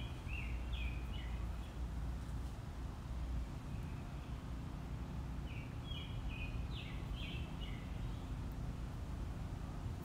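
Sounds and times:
bird chirping: 0.0 - 1.9, 3.6 - 8.6
low background hum: 0.0 - 10.0.

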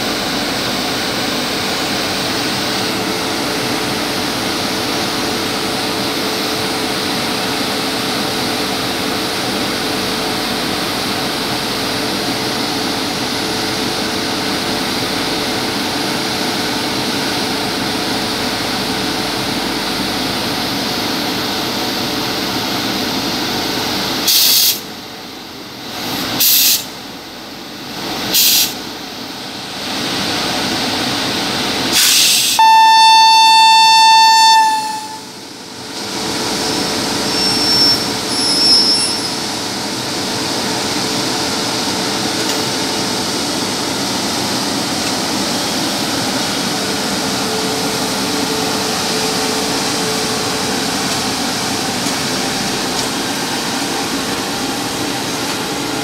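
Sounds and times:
locomotive air horn blast: 32.0 - 35.4
train wheels rolling on rails: 34.6 - 56.0.

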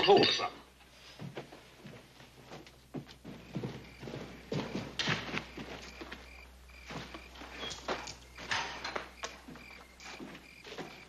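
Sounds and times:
horse hooves trotting on dirt: 1.2 - 11.0.

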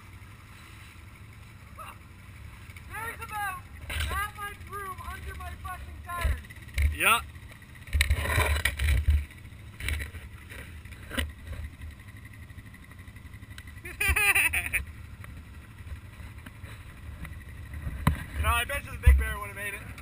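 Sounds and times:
quad bike engine revving: 0.0 - 20.0
person calling out: 1.7 - 2.1, 2.9 - 6.5.

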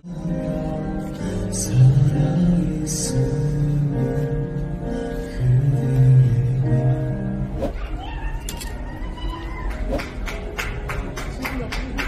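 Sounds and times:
person singing: 0.0 - 7.3
hand claps: 9.8 - 12.0.

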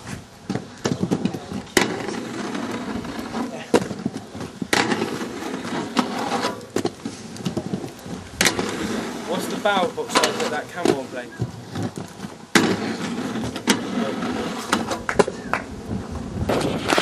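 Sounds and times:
inline skates rolling on concrete: 0.0 - 17.0
skates clacking on metal handrail: 8.4 - 11.1.

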